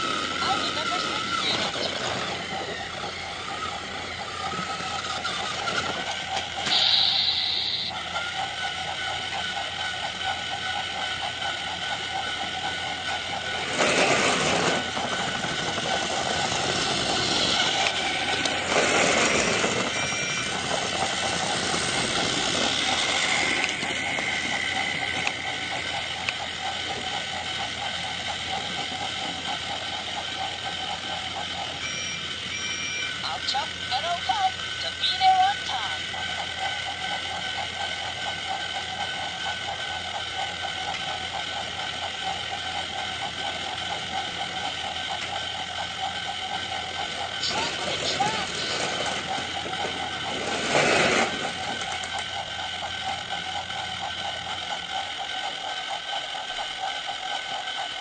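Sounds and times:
small motor whining: 0.0 - 58.0.

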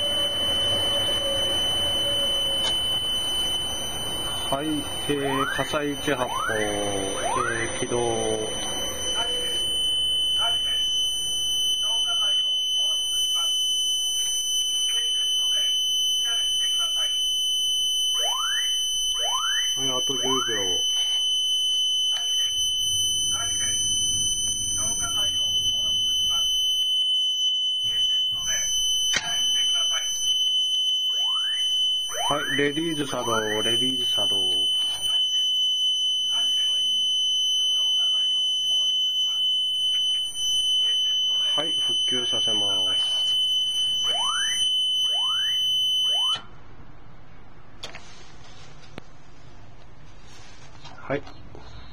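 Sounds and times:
rising siren sweeps: 0.0 - 10.8, 31.1 - 35.1
high electronic buzzer tone: 0.0 - 46.6
recorded voice message: 4.3 - 9.6, 10.4 - 10.9, 19.8 - 21.2, 23.2 - 23.8, 27.8 - 30.2, 32.2 - 35.4, 40.8 - 43.3.

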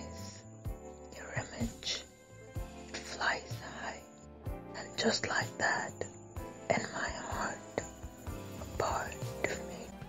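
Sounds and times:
music with sustained notes: 0.0 - 10.0
person whispering: 1.1 - 2.1, 2.9 - 4.1, 4.8 - 8.0, 8.6 - 10.0.

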